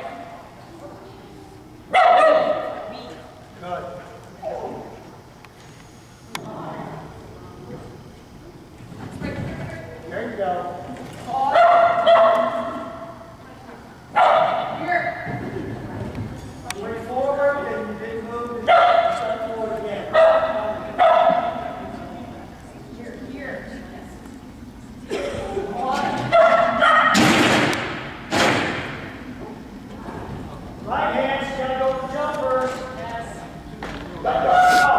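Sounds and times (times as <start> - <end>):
small dog barking high-pitched: 1.9 - 2.8, 11.5 - 12.7, 14.2 - 14.7, 18.7 - 19.2, 20.2 - 21.5, 26.3 - 27.2
loud thuds echoing in a hall: 27.0 - 29.3.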